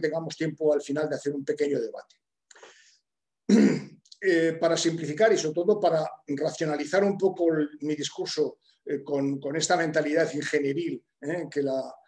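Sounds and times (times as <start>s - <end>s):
faint breath: 2.5s - 3.1s
man clearing his throat: 3.5s - 4.0s.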